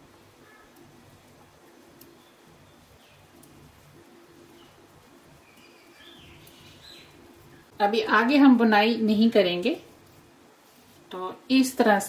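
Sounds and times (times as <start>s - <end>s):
knitting needles clicking: 1.9s - 2.2s, 3.3s - 3.6s
faint birds calling: 2.0s - 7.7s.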